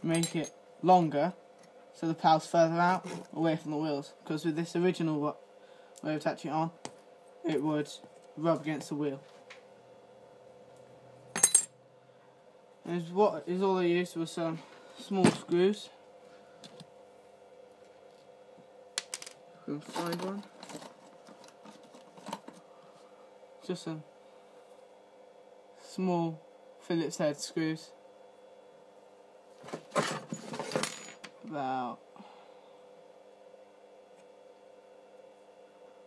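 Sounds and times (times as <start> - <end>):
small metal parts clinking: 11.4 - 11.7, 19.0 - 22.6.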